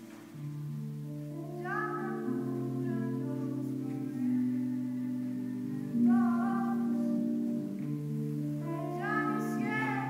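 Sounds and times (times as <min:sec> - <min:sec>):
choir singing held chords: 0:01.3 - 0:10.0.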